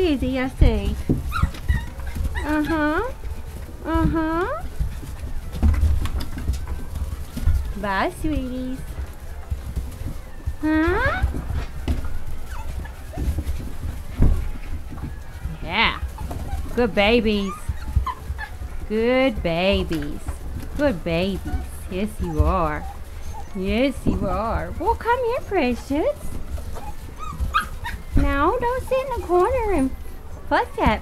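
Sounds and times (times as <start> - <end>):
puppies whimpering and yipping: 0.0 - 31.0.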